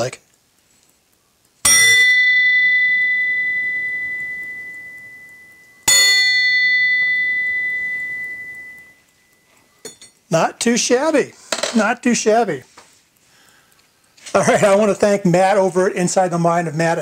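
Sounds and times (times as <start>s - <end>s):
small bell ringing: 1.6s - 10.2s.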